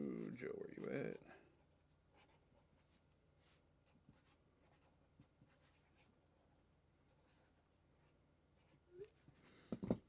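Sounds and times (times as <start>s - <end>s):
marker pen scratching: 0.0s - 6.5s.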